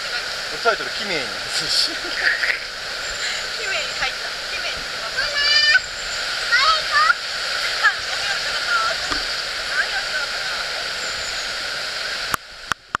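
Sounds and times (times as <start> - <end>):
river rushing over rocks: 0.0 - 12.8.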